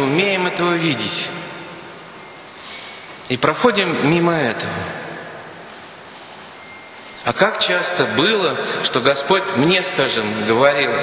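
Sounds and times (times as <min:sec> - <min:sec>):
man's voice echo: 0:00.0 - 0:01.9, 0:02.7 - 0:06.2, 0:07.0 - 0:11.0
steady background hiss: 0:00.0 - 0:11.0
thin high beep: 0:06.1 - 0:07.9.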